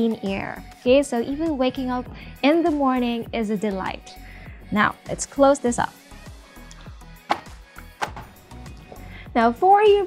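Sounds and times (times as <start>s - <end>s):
soft background music: 0.0s - 10.0s
door panels knocking: 7.3s - 8.4s.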